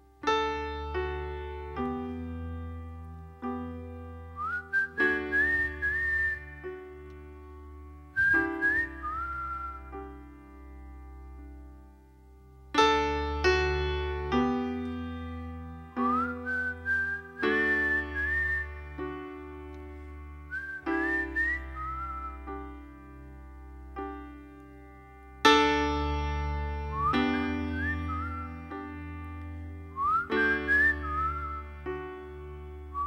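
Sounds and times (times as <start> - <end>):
piano chords: 0.0 - 33.0
man whistling a melody: 4.4 - 7.1, 8.1 - 10.2, 15.9 - 19.6, 20.5 - 22.9, 26.8 - 29.0, 29.9 - 33.0.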